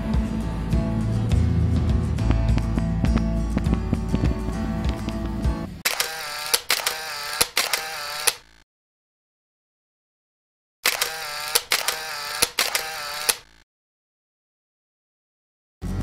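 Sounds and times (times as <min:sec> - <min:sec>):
camera shutter clicks: 0:05.9 - 0:08.5, 0:10.8 - 0:13.5
camera motor whir: 0:05.9 - 0:08.6, 0:10.8 - 0:13.6.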